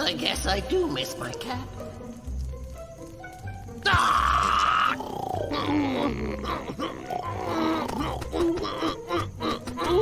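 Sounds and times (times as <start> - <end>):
cartoon man screaming: 3.8 - 9.0.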